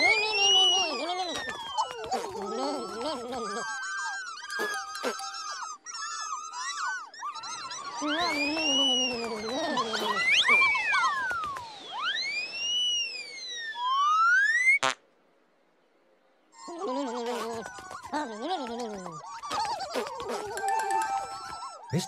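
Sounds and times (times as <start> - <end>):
squeaky high-pitched chirping chatter: 0.0 - 13.9, 16.6 - 22.0
cartoon whistling swoops: 0.0 - 14.8.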